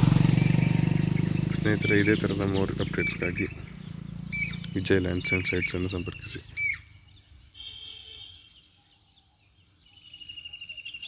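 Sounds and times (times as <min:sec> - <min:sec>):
birds trilling: 0:00.0 - 0:11.0
faint outdoor background noise: 0:00.0 - 0:11.0.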